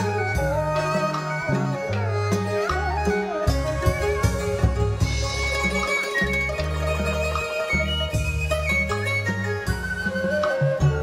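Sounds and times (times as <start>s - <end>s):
traditional folk music: 0.0s - 11.0s.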